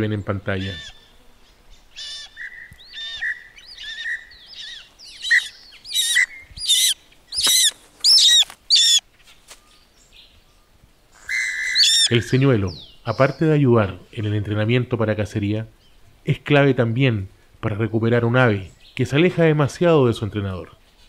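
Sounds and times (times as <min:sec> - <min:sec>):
hawk crying: 0:00.6 - 0:01.1, 0:02.0 - 0:09.0, 0:11.2 - 0:12.3
soft chirping notes: 0:02.1 - 0:09.0.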